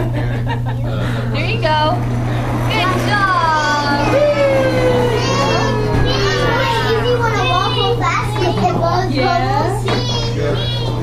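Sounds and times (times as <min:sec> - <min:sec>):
children shouting and squealing: 0:02.7 - 0:09.1.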